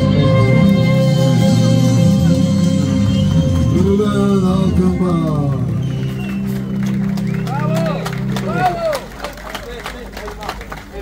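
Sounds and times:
scattered clapping: 4.8s - 11.0s.

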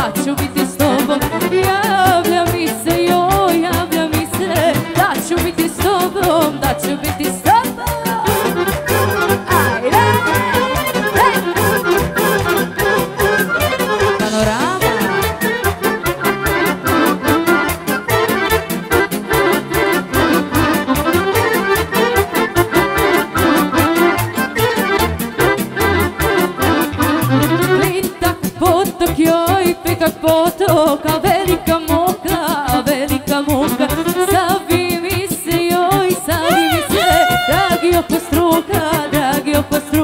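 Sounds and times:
accordion: 0.0s - 40.0s
folk band playing dance music: 0.0s - 40.0s
violin: 0.0s - 40.0s.

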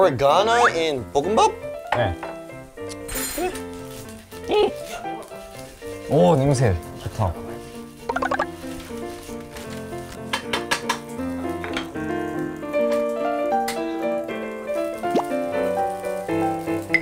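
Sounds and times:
background music with melody: 0.0s - 17.0s
rice sizzling in a frying pan: 0.0s - 17.0s.

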